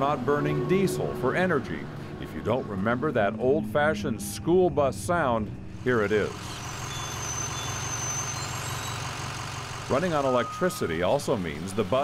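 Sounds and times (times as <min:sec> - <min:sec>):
diesel bus engine idling: 0:00.0 - 0:03.2, 0:05.0 - 0:12.0.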